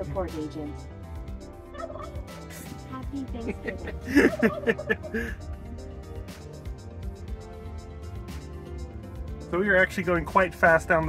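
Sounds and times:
warbling laugh: 1.7 - 2.8, 3.5 - 5.4.

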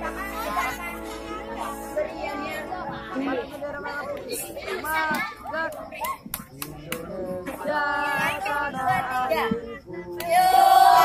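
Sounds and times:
children calling out and chattering: 0.0 - 11.0.

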